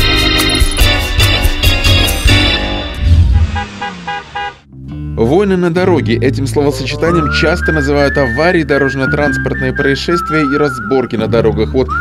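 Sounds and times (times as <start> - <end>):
jingle low hit: 0.1 - 3.6
car horn toots: 2.3 - 4.7.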